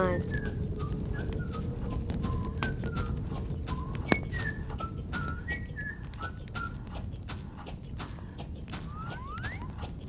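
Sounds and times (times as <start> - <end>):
low rumble: 0.0 - 10.0.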